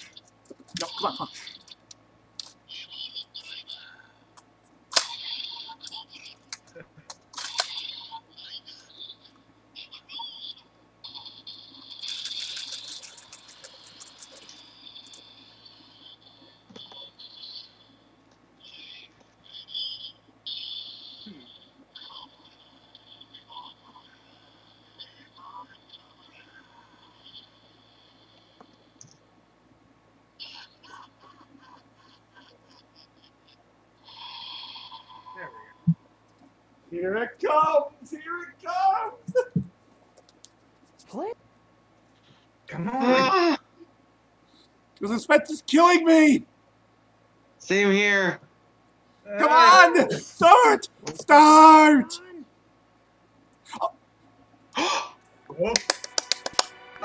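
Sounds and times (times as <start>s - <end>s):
small clicks: 12.0s - 15.3s.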